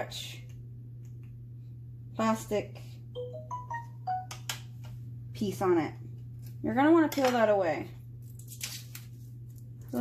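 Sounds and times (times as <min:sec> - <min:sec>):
electronic chime beeps: 0:03.2 - 0:04.3.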